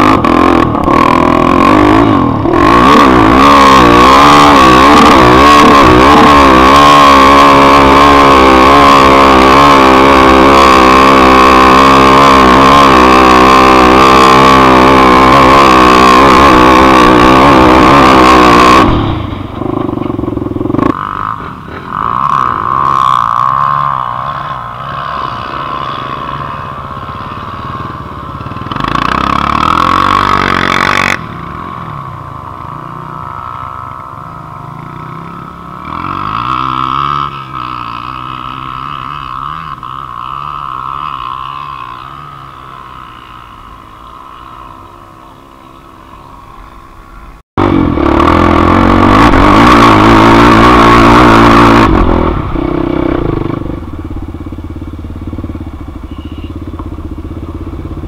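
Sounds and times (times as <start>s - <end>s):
dirt bike engine at full throttle: 0.0s - 58.0s
motorbike engines revving: 0.0s - 58.0s.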